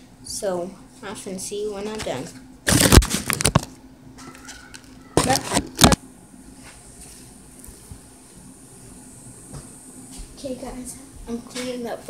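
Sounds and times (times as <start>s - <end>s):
room hiss: 6.0s - 12.0s.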